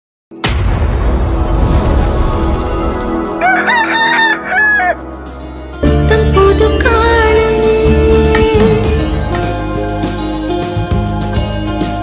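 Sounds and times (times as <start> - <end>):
rooster crowing: 3.4 - 5.1.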